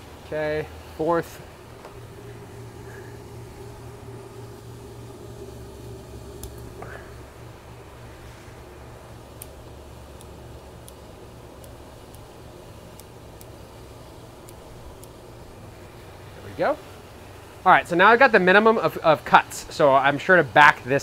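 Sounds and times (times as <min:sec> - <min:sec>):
fan humming: 0:00.0 - 0:21.0
scissors snipping clicks: 0:09.4 - 0:11.0, 0:12.9 - 0:13.6, 0:14.4 - 0:15.2.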